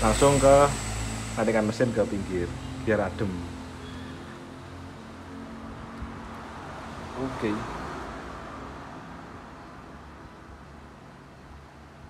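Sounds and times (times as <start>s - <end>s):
metal lathe humming: 0.0s - 4.3s.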